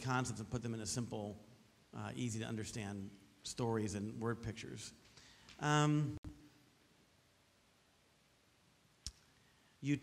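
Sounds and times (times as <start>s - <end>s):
man speaking: 0.0s - 5.0s, 5.6s - 6.4s, 9.8s - 10.0s.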